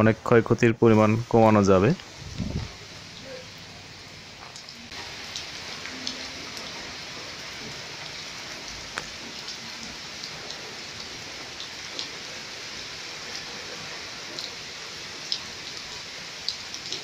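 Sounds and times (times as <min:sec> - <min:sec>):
rain falling on foliage: 0:00.0 - 0:17.0.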